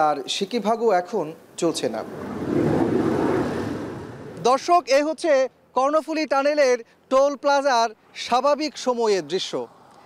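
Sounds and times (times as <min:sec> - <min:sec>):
vehicle passing by: 0:01.7 - 0:04.5.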